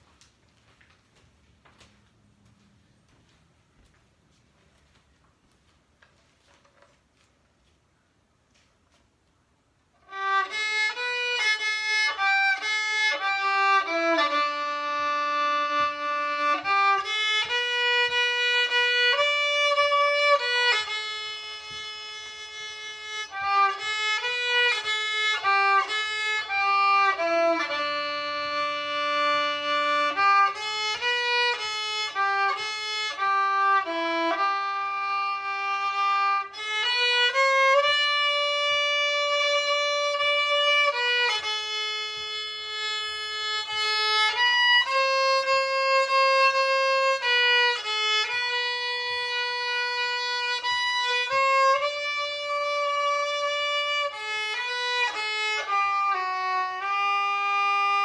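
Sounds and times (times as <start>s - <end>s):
solo fiddle melody: 10.0s - 58.0s.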